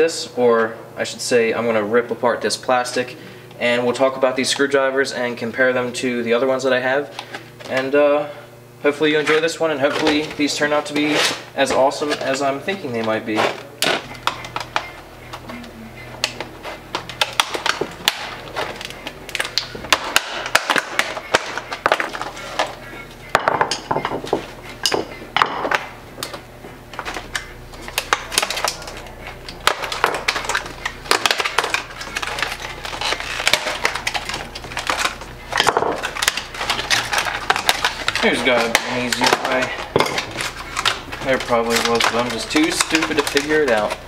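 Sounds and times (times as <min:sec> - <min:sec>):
plastic packaging crackling: 0:26.9 - 0:44.0.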